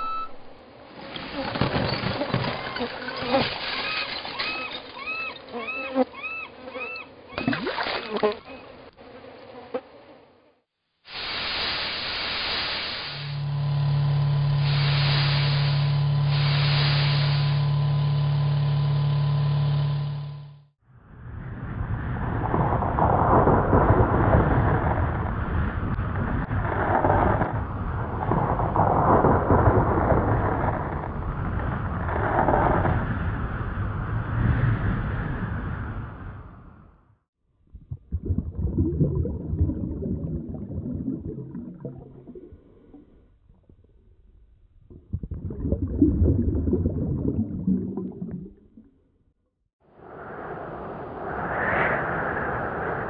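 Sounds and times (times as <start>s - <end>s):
debris clattering and thudding: 1.0s - 5.1s
seagull calling: 3.8s - 7.6s
rain-like hiss: 11.0s - 13.4s, 14.6s - 17.6s
rolling thunder: 21.5s - 32.6s.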